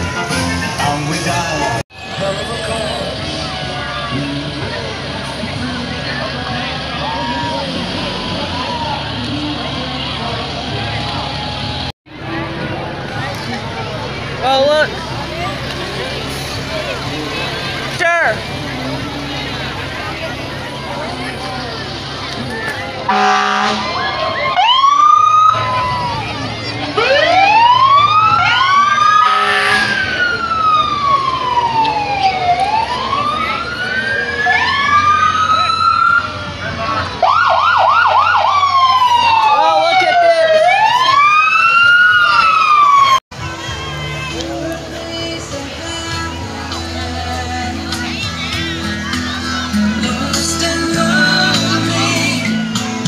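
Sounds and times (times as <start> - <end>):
fire truck sirens wailing: 0.0 - 53.0
truck engines rumbling: 0.0 - 53.0
horn blasts: 23.1 - 24.2, 29.2 - 30.2.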